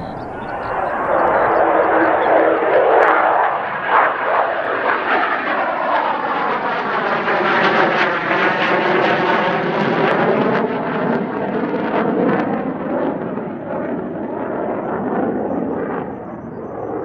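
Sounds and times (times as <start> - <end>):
jet engine roar passing by: 0.0 - 17.0.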